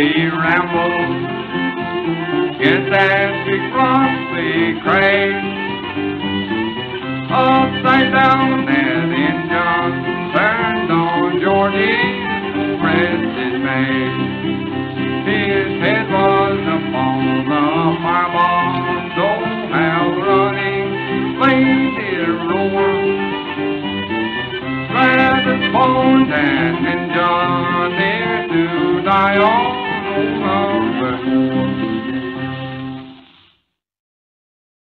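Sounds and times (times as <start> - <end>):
banjo and guitar accompaniment: 0.0 - 33.4
fiddle melody with sliding notes: 0.0 - 33.6.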